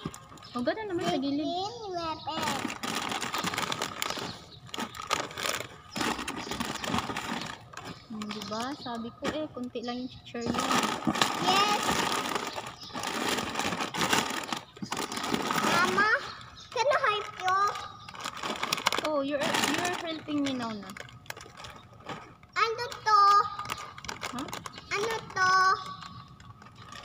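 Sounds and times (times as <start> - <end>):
snack packets rustling: 0.0 - 9.1, 10.5 - 27.0
child calling and babbling: 1.0 - 2.8, 11.4 - 12.1, 15.6 - 18.0, 22.6 - 23.7, 24.3 - 26.2.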